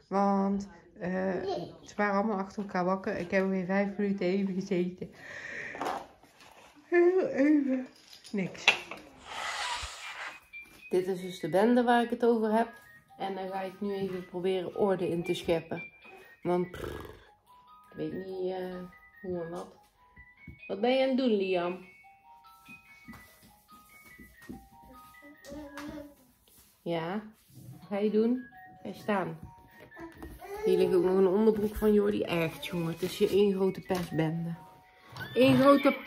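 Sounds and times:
toy chiming melody: 0:10.4 - 0:16.7, 0:34.6 - 0:36.0.

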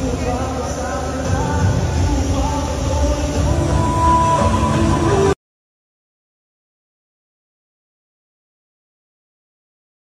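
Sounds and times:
faint steady musical tones: 0:00.0 - 0:05.4.

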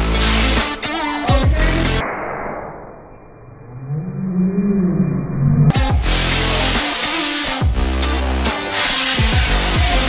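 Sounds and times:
low hum: 0:01.6 - 0:06.0.

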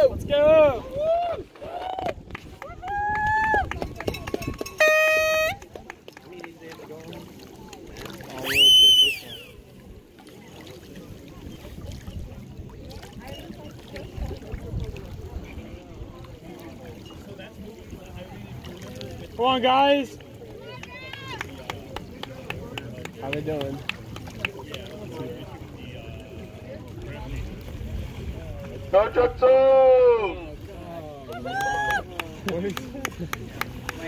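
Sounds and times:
faint distant voices: 0:00.0 - 0:34.0
spectators whooping and cheering: 0:00.8 - 0:03.8, 0:08.4 - 0:09.5, 0:31.3 - 0:32.2.

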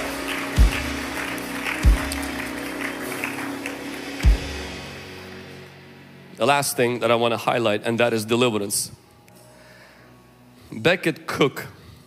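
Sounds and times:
light applause: 0:00.0 - 0:04.7
worship music chord: 0:00.0 - 0:11.0.

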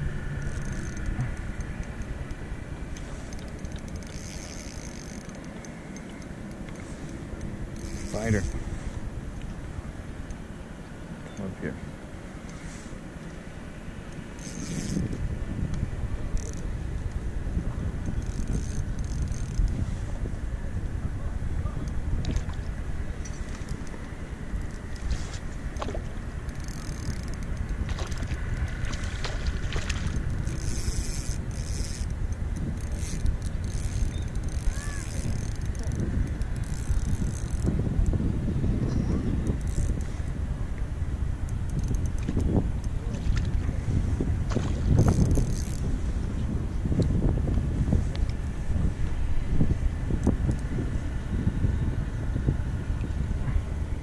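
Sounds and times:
wind on microphone: 0:00.0 - 0:10.4, 0:14.2 - 0:54.0.

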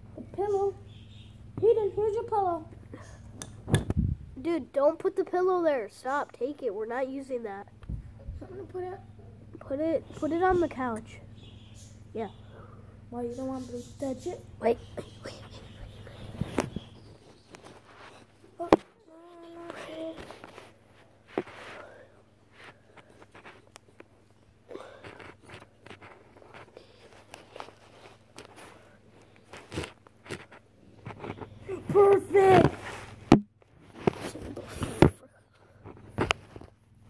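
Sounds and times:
child's voice: 0:00.2 - 0:00.8, 0:01.6 - 0:03.2, 0:04.4 - 0:11.3, 0:12.1 - 0:12.5, 0:13.1 - 0:16.4, 0:18.6 - 0:20.6, 0:31.6 - 0:32.9.

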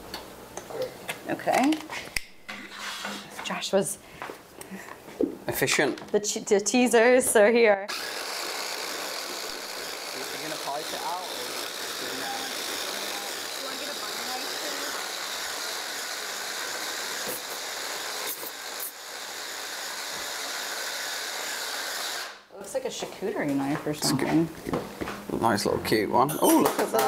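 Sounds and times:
immersion blender running: 0:07.9 - 0:22.5.

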